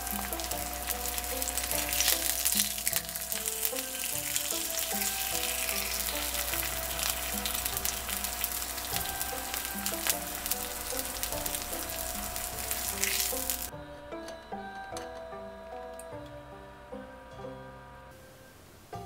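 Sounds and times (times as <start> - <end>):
meat sizzling in hot oil: 0.0 - 13.7.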